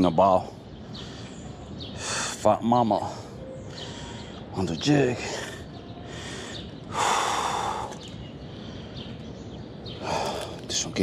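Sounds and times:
man breathing: 0:03.3 - 0:04.5, 0:05.2 - 0:09.2, 0:09.9 - 0:10.7.

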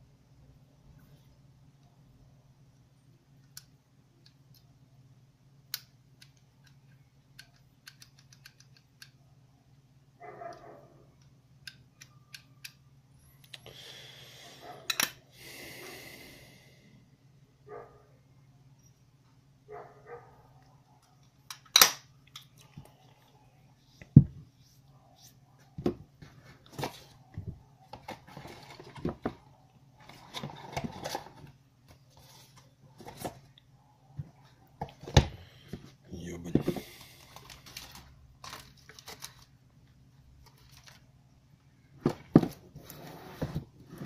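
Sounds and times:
faint low hum: 0:00.0 - 0:44.0.

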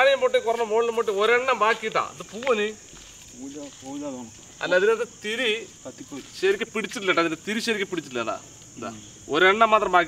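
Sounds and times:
people talking: 0:00.0 - 0:02.8, 0:03.4 - 0:10.0
crickets droning: 0:00.0 - 0:10.0.

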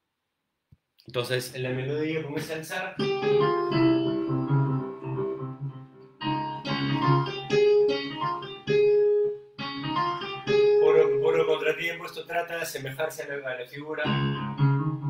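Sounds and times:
sampled keyboard and plucked strings: 0:03.0 - 0:12.0, 0:14.0 - 0:15.0.

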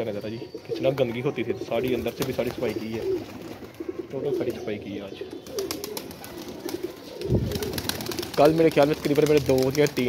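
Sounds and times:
pigeons cooing: 0:00.0 - 0:10.0.

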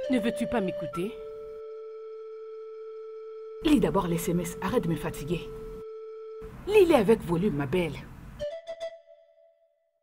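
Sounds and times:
held synthesizer note: 0:00.0 - 0:06.5.

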